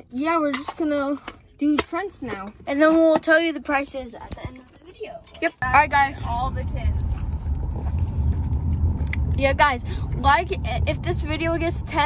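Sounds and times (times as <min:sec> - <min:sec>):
road and engine rumble in car: 0:05.0 - 0:12.0.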